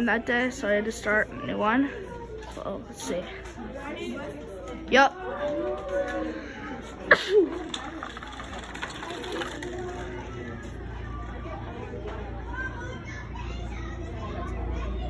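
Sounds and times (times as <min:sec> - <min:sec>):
students chattering: 0:00.0 - 0:15.0.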